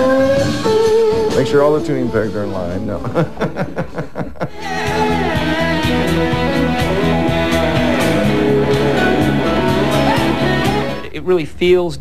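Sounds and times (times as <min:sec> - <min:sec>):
sliding guitar notes: 0:00.0 - 0:02.3, 0:04.6 - 0:11.1
steady bass line: 0:04.7 - 0:11.1.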